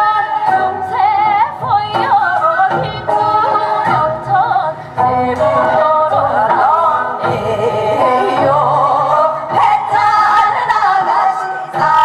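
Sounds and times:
accompaniment with steady beat: 0.0s - 12.0s
women singing with vibrato: 0.0s - 12.0s.

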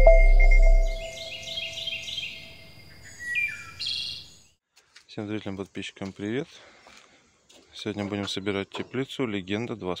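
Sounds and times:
bird chirping: 0.0s - 4.6s.

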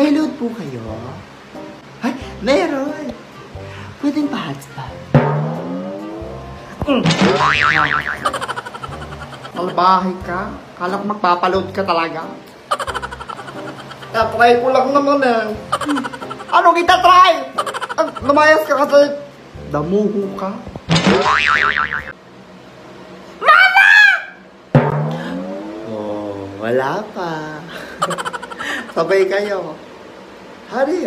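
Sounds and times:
cartoon boing twang: 6.8s - 8.3s, 20.9s - 22.1s, 24.8s - 25.4s.

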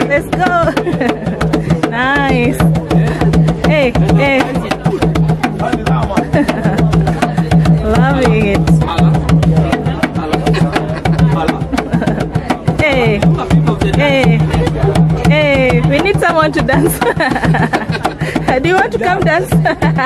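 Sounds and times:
hand drum rhythm: 0.0s - 20.0s.

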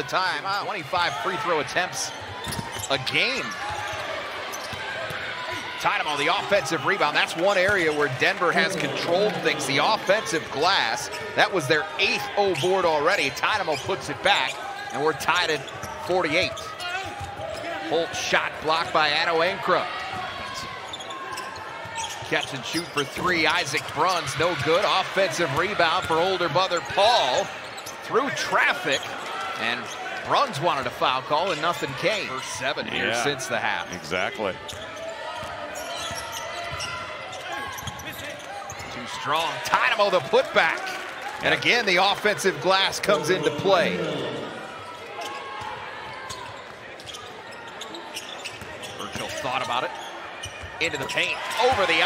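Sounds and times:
arena noise: 0.0s - 52.0s
crowd murmur: 43.0s - 45.3s
shoes squeaking on hardwood floor: 46.2s - 52.0s.

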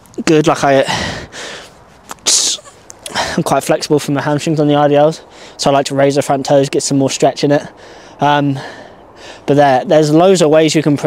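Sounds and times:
man breathing hard: 0.8s - 1.9s, 3.0s - 3.4s, 5.3s - 5.6s, 7.7s - 9.5s.

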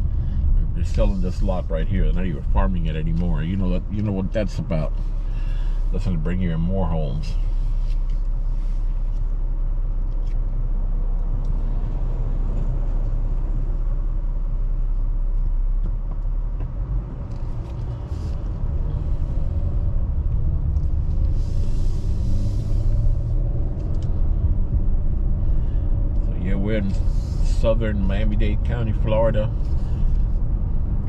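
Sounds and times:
car engine from inside cabin: 0.0s - 31.0s.

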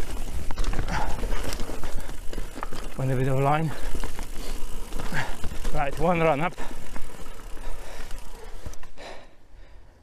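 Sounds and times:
bike tyres on dirt trail: 0.0s - 10.0s.

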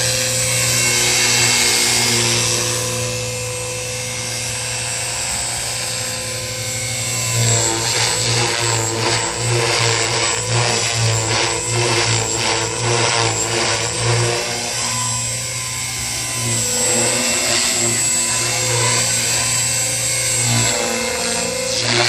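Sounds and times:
rc helicopter motor and rotor whine: 0.0s - 22.0s.

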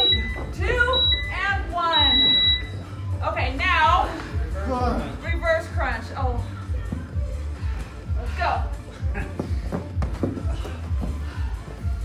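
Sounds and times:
high-pitched timer beep: 0.0s - 2.9s
pop music with sung vocals: 0.0s - 12.0s.

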